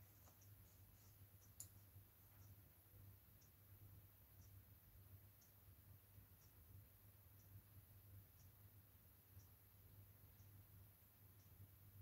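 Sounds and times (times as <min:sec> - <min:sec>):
faint low hum: 0:00.0 - 0:12.0
faint ticking: 0:00.0 - 0:12.0.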